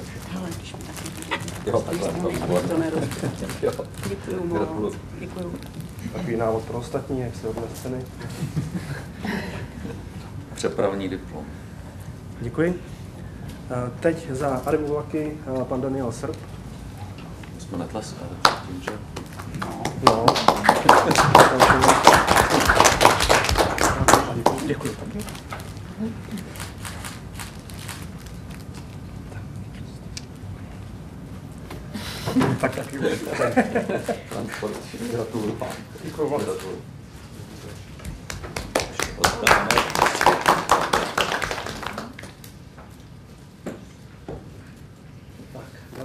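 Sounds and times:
many people clapping: 18.4s - 25.0s, 38.0s - 42.5s.

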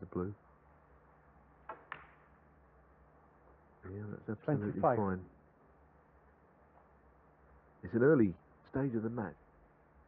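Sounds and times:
cue striking cue ball: 1.6s - 2.4s
snooker balls colliding: 1.6s - 2.4s.

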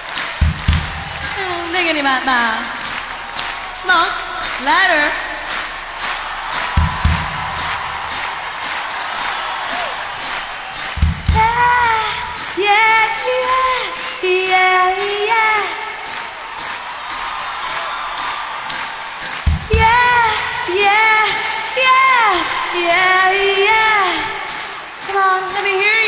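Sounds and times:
steady ticking beat: 0.0s - 26.0s
low drum hits: 0.4s - 1.8s, 2.8s - 9.3s, 10.9s - 12.6s
woman singing: 1.3s - 3.0s, 3.8s - 5.6s, 11.3s - 16.0s, 19.6s - 26.0s.

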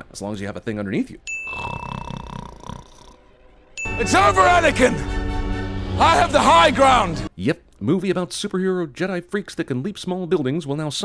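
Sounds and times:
bright bell ding: 1.3s - 1.9s, 3.8s - 4.7s.

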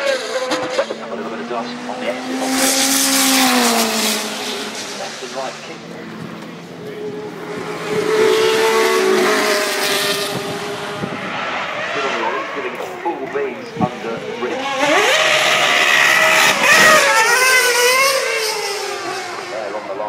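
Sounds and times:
racing car engine revving: 0.0s - 20.0s.

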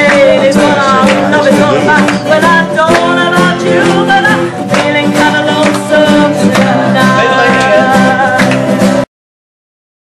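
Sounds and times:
acoustic guitars: 0.0s - 9.1s
woman singing: 0.0s - 9.1s.

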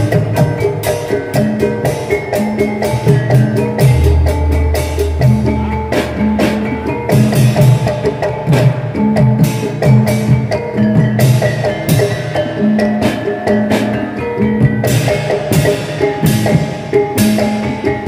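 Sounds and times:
hand drum beating fast rhythm: 0.0s - 18.0s
ringing metal percussion: 0.0s - 18.0s.

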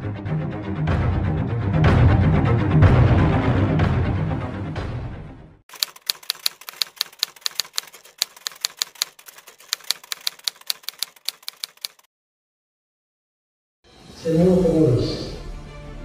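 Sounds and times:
music: 0.0s - 5.6s, 13.8s - 16.0s
typewriter key clicks: 5.7s - 12.1s.

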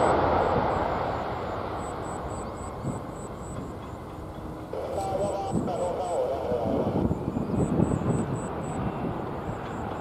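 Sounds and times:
jet engine roar: 0.0s - 10.0s.

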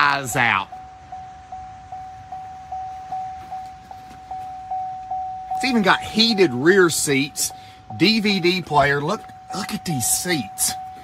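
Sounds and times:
car door warning chime: 0.0s - 11.0s.

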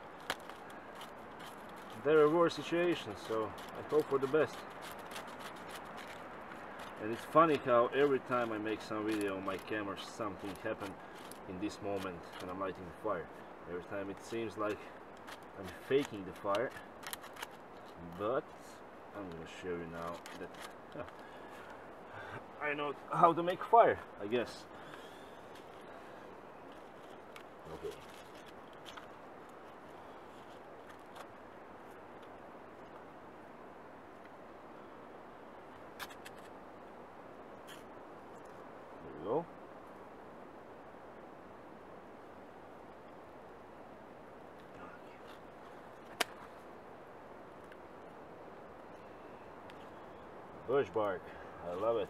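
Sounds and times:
knife scraping fire steel: 0.0s - 12.6s
faint outdoor hush: 0.0s - 52.0s.

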